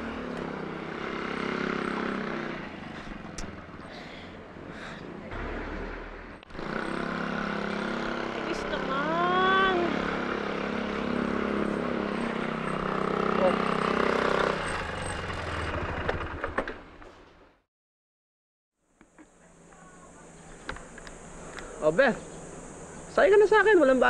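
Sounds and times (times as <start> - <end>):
motorcycle engine running: 0.0 - 3.9, 5.3 - 16.6
street noise: 0.0 - 17.6, 18.9 - 24.0.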